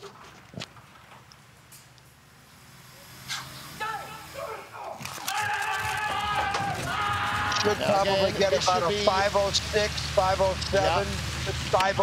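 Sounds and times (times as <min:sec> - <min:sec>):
people shouting: 0:03.8 - 0:09.4.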